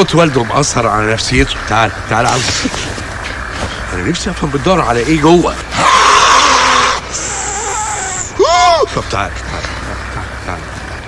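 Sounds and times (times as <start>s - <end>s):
man's hoarse hissing yell: 5.7s - 8.9s.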